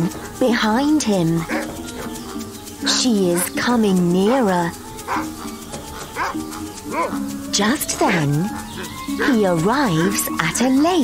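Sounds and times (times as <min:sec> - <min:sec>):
soft background music: 0:00.0 - 0:11.0
dog barking: 0:01.4 - 0:02.2, 0:04.2 - 0:05.3, 0:06.2 - 0:07.2.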